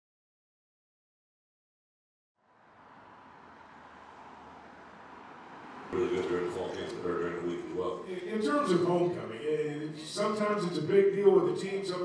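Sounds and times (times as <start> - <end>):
cars driving along street: 2.4 - 12.0.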